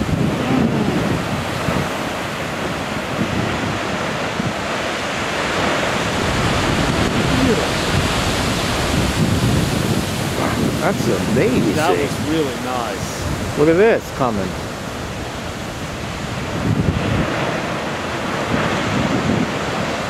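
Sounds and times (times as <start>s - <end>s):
ocean surf crashing on rocks: 0.0s - 20.0s
wind buffeting microphone: 0.0s - 20.0s.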